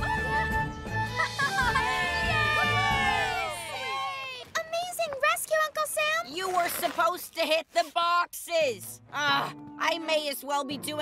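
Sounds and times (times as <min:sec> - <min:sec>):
background music: 0:00.0 - 0:04.5, 0:08.2 - 0:11.0.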